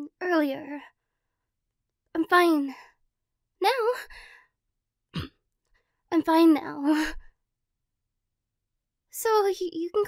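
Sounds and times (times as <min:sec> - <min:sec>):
woman's soft voice: 0:02.2 - 0:02.9, 0:03.6 - 0:04.1.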